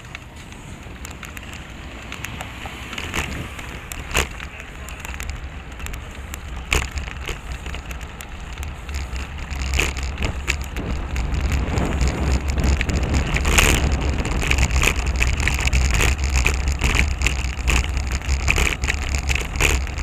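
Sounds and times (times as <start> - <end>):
bicycle rattling clicks: 0.0 - 20.0
tyre and road noise: 0.0 - 20.0
wind noise on microphone: 0.7 - 20.0.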